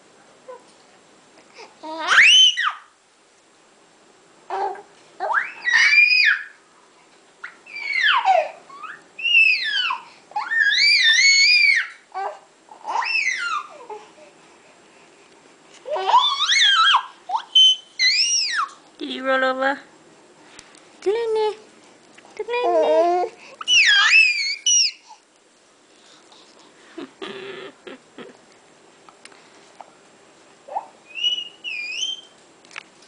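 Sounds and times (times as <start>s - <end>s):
baby squealing: 1.9s - 2.9s, 4.6s - 6.6s, 7.4s - 14.0s, 15.9s - 18.8s, 22.8s - 25.2s, 30.7s - 32.4s.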